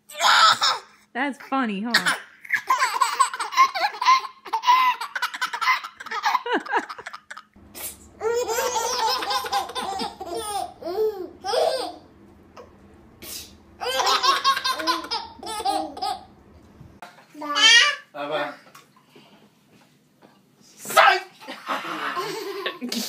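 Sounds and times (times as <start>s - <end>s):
babies laughing and babbling: 0.1s - 1.0s, 2.0s - 7.5s, 8.2s - 12.1s, 13.8s - 16.3s.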